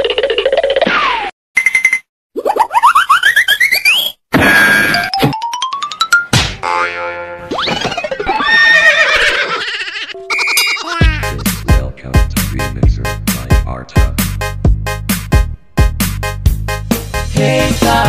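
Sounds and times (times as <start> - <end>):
music: 11.0 - 18.0.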